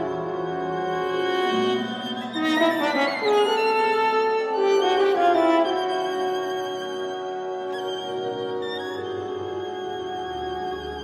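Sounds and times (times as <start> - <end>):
orchestra playing: 0.0 - 11.0.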